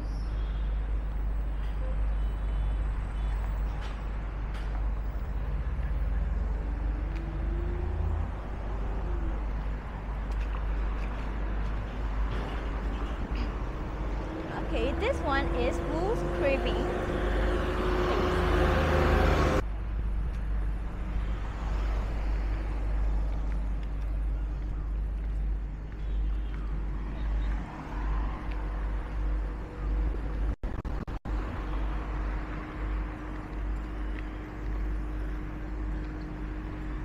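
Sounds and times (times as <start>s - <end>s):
passing vehicles rumble: 0.0s - 37.0s.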